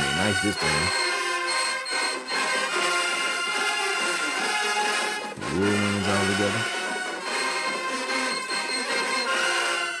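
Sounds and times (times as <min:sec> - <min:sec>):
marching band playing: 0:01.2 - 0:07.4.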